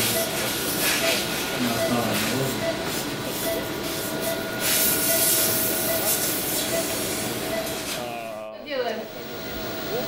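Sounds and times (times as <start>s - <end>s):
equipment hiss and hum: 0.0s - 10.0s.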